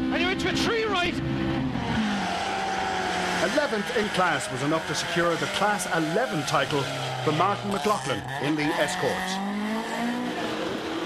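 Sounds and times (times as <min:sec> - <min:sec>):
rally car engine running: 0:00.0 - 0:11.0
road and tyre noise: 0:00.0 - 0:11.0.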